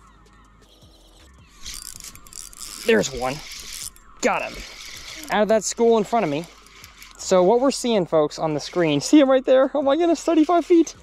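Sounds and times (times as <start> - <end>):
fishing reel whirring: 0.6 - 11.0.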